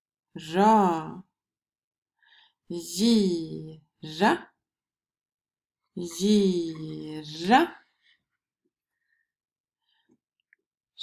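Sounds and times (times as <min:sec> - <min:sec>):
person saying a syllable: 0:00.4 - 0:01.3, 0:02.7 - 0:04.4, 0:06.0 - 0:07.8.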